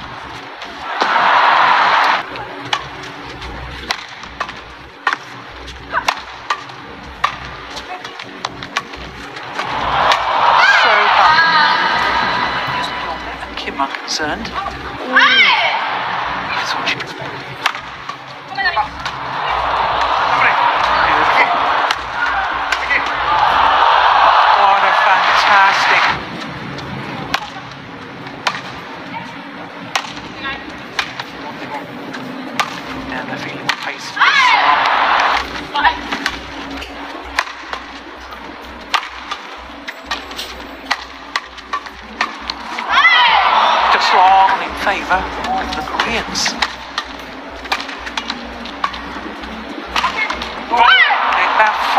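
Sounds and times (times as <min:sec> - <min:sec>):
crowd cheering and shouting: 0:00.0 - 0:02.8, 0:09.3 - 0:13.6, 0:14.5 - 0:26.4, 0:33.7 - 0:36.7, 0:40.9 - 0:51.9
racquet striking shuttlecock: 0:03.8 - 0:10.3, 0:17.6 - 0:18.3, 0:21.8 - 0:22.1, 0:28.4 - 0:28.8, 0:29.9 - 0:30.3, 0:31.0 - 0:31.3, 0:32.6 - 0:32.8, 0:33.6 - 0:33.9, 0:37.3 - 0:37.9, 0:38.9 - 0:39.5, 0:40.8 - 0:42.9, 0:45.5 - 0:49.1, 0:49.9 - 0:50.5.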